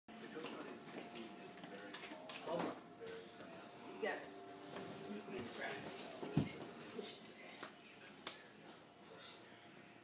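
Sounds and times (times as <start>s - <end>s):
faint background music: 0.1s - 10.0s.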